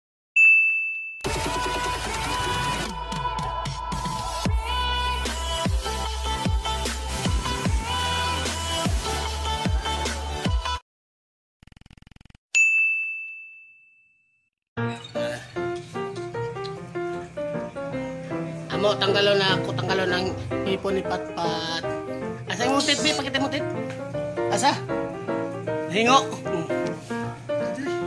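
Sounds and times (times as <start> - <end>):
bright electronic ding: 0.4 - 1.3
electronic jingle music: 22.6 - 23.5.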